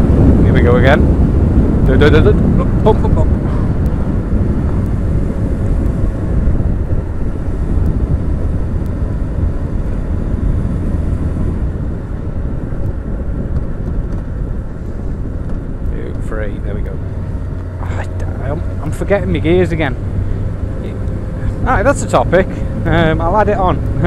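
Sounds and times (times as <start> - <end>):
motorcycle engine running: 0.0 - 24.0
wind buffeting microphone: 0.0 - 24.0.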